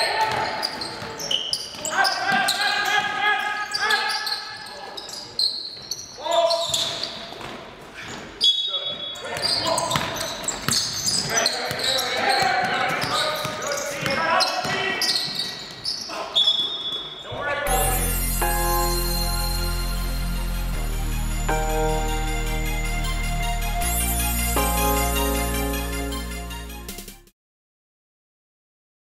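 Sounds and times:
players and coaches calling out: 0:00.0 - 0:07.1, 0:08.4 - 0:17.7
basketballs bouncing on court: 0:00.1 - 0:03.2, 0:09.3 - 0:16.0
music: 0:17.7 - 0:27.3.

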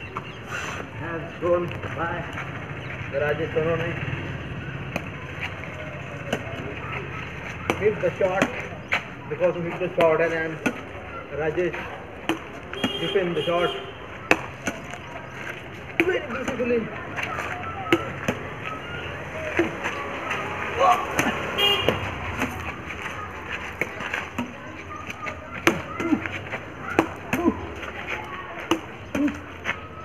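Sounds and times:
racquets striking shuttlecock: 0:04.4 - 0:30.0.

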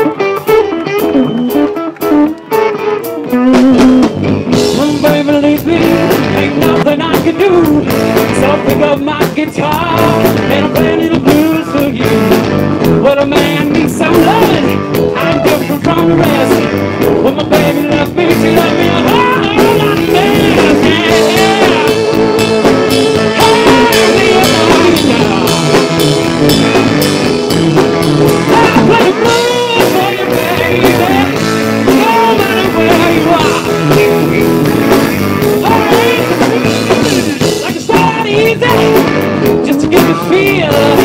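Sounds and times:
blues-rock band playing: 0:00.0 - 0:41.0
electric guitar bending notes: 0:00.0 - 0:41.0.

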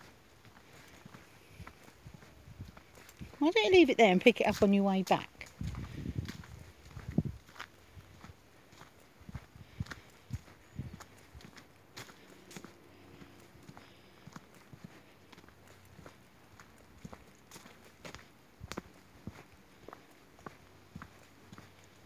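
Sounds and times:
footsteps on dirt path: 0:00.0 - 0:22.0.

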